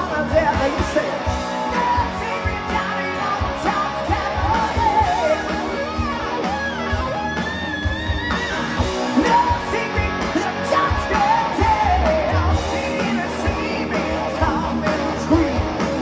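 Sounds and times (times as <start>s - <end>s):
person singing: 0.0s - 6.1s, 9.0s - 16.0s
live hard rock band: 0.0s - 16.0s.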